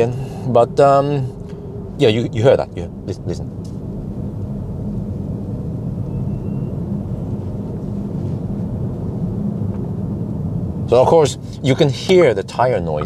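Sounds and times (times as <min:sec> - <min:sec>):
tyre noise droning in car cabin: 0:00.0 - 0:13.0.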